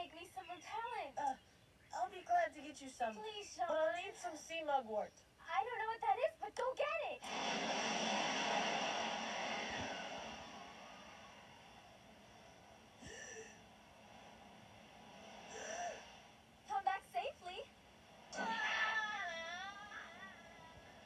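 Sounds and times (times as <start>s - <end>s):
hiss: 7.2s - 16.7s.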